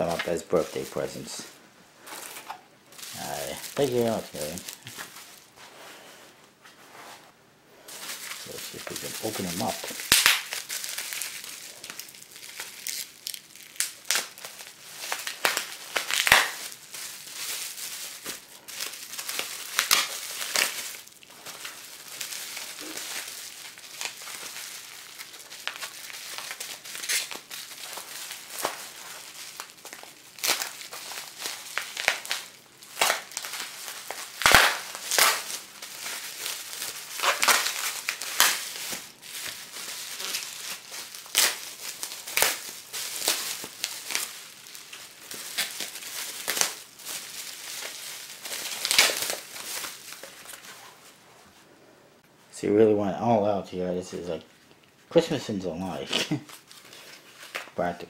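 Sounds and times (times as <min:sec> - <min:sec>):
bubble wrap and paper crinkling: 0:00.0 - 0:51.6, 0:53.4 - 0:58.0.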